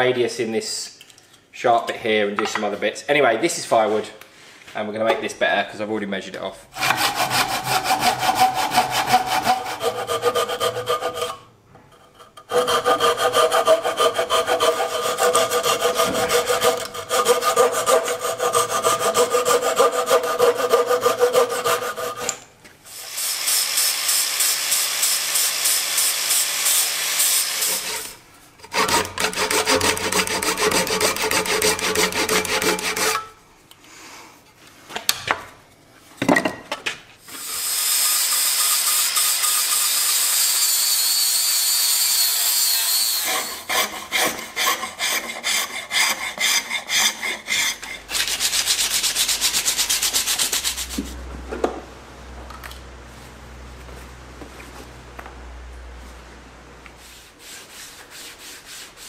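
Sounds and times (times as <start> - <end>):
hand saw cutting wood: 6.7 - 22.5, 23.3 - 33.3, 37.3 - 51.2
angle grinder on wood: 6.8 - 11.4, 12.5 - 22.4, 23.1 - 33.2.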